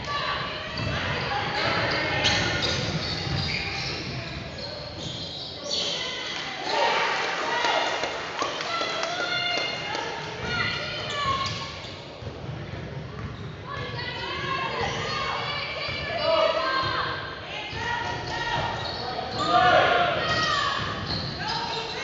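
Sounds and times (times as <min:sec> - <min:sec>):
sneakers squeaking: 0:00.0 - 0:07.1, 0:08.4 - 0:22.0
players' voices: 0:00.0 - 0:22.0.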